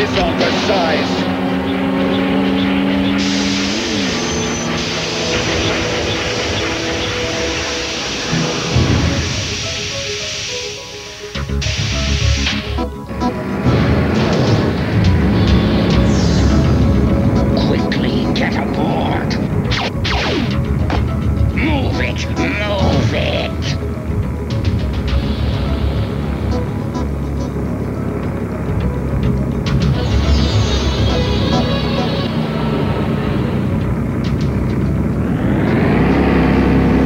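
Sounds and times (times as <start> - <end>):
dramatic music: 0.0 - 37.0.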